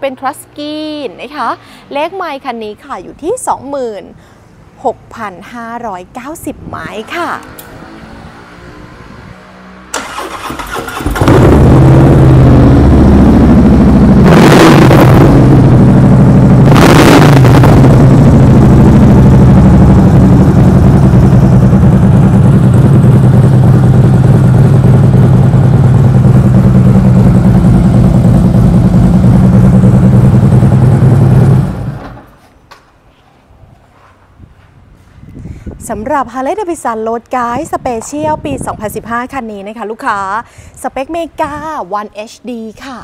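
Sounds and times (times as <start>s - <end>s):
motorcycle engine idling and revving: 6.6s - 32.4s.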